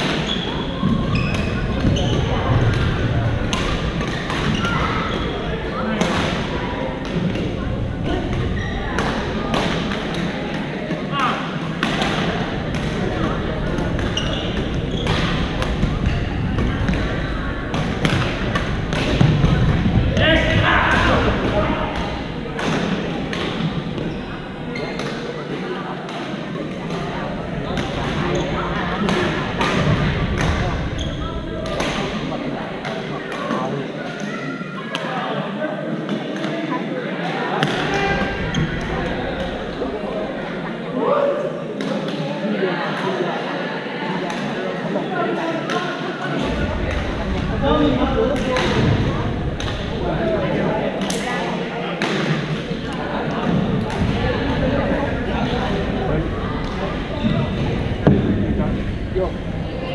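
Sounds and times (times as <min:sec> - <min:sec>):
players chattering and calling: 0:00.0 - 0:59.9.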